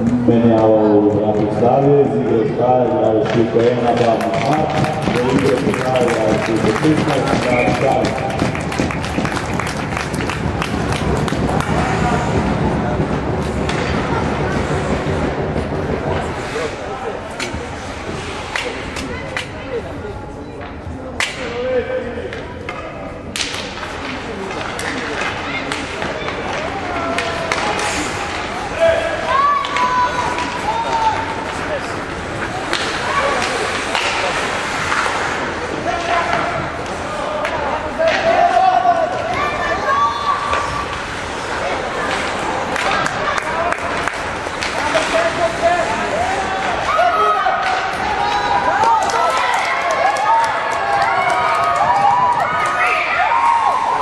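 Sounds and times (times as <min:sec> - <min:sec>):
hockey sticks and puck clacking: 0:03.2 - 0:12.2, 0:13.3 - 0:16.7, 0:17.3 - 0:19.8, 0:20.6 - 0:21.6, 0:22.3 - 0:39.8, 0:40.4 - 0:53.1
skates scraping on ice: 0:03.2 - 0:19.5.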